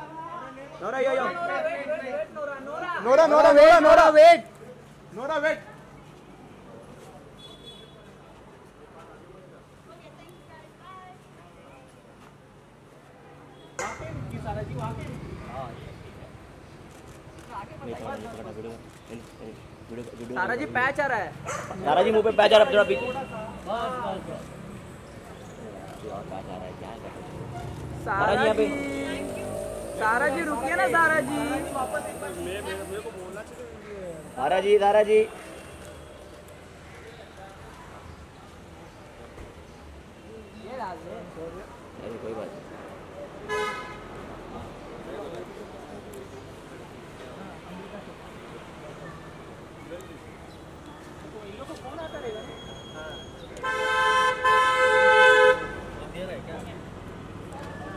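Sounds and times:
car horn honking: 43.5 - 44.0, 53.6 - 55.9.

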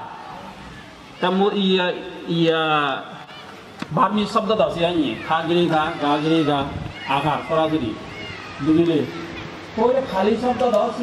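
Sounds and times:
man speaking into microphone: 3.9 - 8.0, 9.8 - 11.0.

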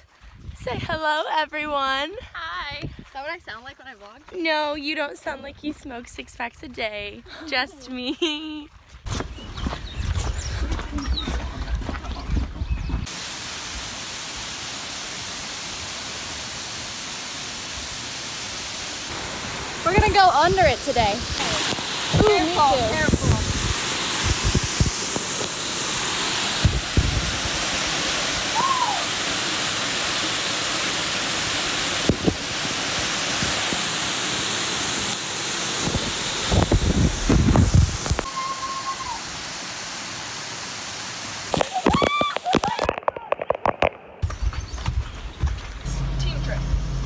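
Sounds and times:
waterfall rushing and splashing: 13.0 - 43.8
voices: 19.8 - 23.5
vehicle engine idling: 45.9 - 47.0.

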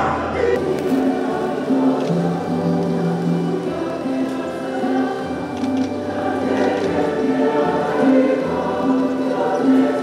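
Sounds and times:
choir singing held notes: 0.0 - 10.0.

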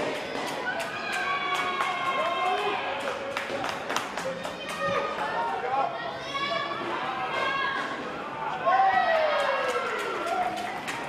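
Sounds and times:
voices calling out and chattering: 0.0 - 11.0.

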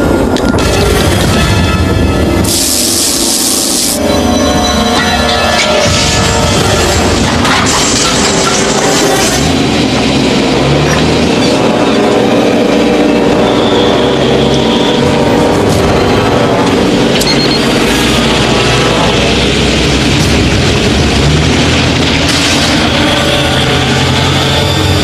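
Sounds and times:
background music: 0.0 - 25.0
vehicle engine running: 5.8 - 25.0.

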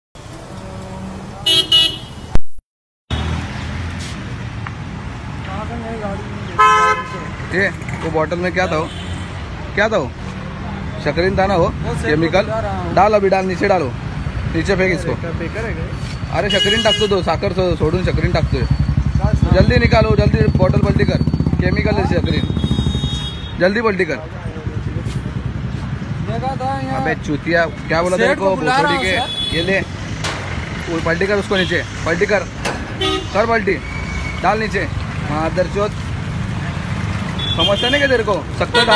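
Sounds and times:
street traffic: 0.2 - 38.9
vehicle horn toots: 1.4 - 2.4, 6.6 - 7.2, 16.5 - 17.2, 22.3 - 23.6, 33.0 - 33.5.

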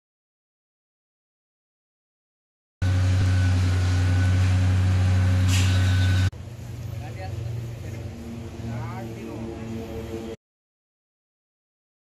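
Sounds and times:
loud machine hum with drone: 2.8 - 10.4.

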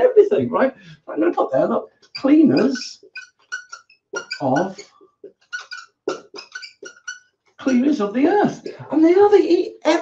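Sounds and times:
marker squeaking on whiteboard: 1.2 - 8.8.

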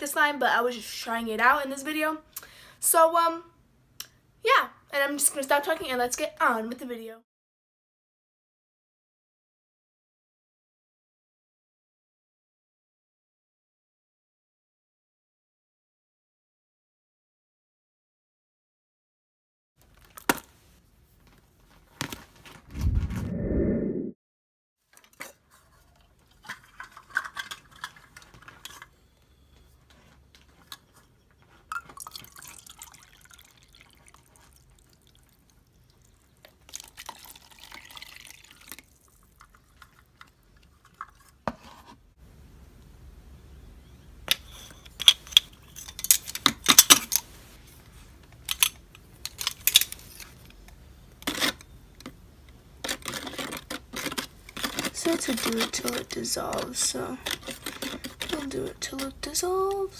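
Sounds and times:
liquid being poured and stirred: 31.7 - 41.7, 52.8 - 59.1.

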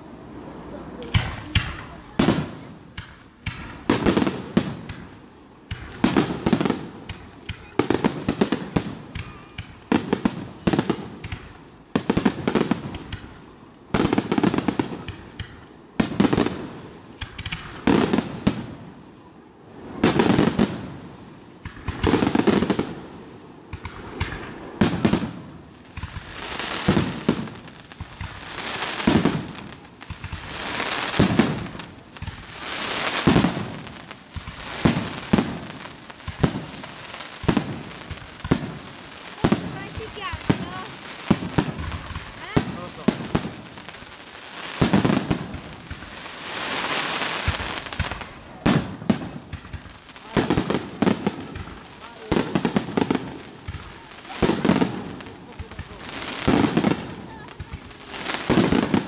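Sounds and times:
firework crackle: 0.0 - 59.0
firework bangs with echo: 1.0 - 19.0, 19.9 - 59.0.

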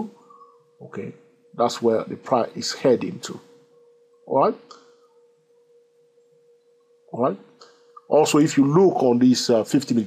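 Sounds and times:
faint steady tone: 0.0 - 10.0.

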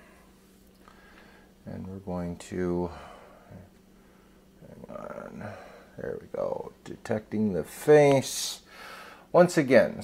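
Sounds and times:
faint low hum: 0.0 - 10.0
person speaking: 4.6 - 8.7.

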